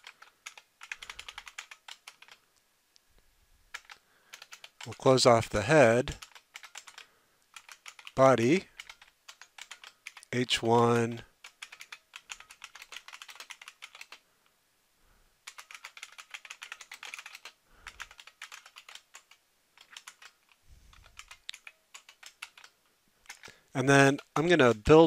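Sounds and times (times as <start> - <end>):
typing on a computer keyboard: 0.0 - 2.4, 3.7 - 5.1, 6.0 - 14.2, 15.4 - 25.0.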